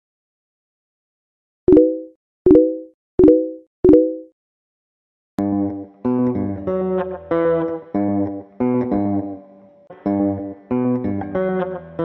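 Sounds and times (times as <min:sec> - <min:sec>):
pop sound effects: 0:01.7 - 0:04.3.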